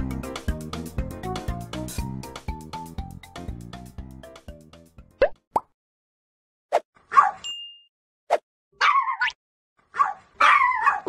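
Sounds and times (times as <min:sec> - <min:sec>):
background music: 0:00.0 - 0:05.2
cartoon pop sound effects: 0:05.2 - 0:05.7.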